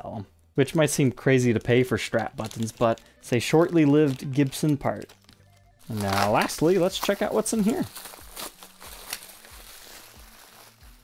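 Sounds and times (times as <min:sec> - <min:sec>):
bubble wrap crinkling: 0:01.3 - 0:11.0.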